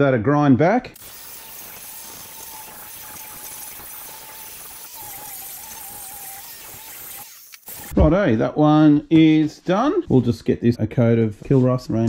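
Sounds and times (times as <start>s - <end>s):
angle grinder grinding metal: 1.0s - 8.0s.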